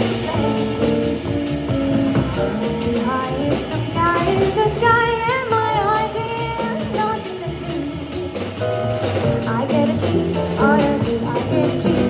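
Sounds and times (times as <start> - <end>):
woman singing: 0.0 - 1.2, 1.8 - 8.4, 9.4 - 12.0
jazz band playing: 0.0 - 12.0.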